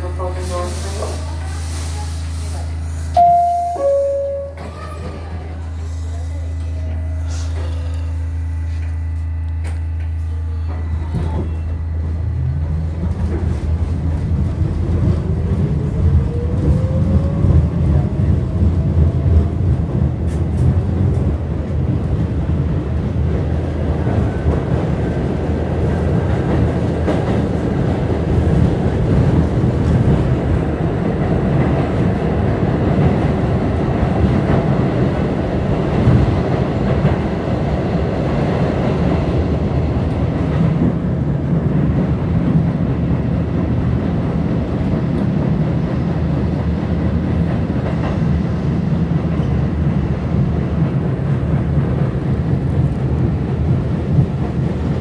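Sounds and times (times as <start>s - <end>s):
train rattle and hiss: 0.0s - 3.5s
subway train wheels rumbling: 0.0s - 55.0s.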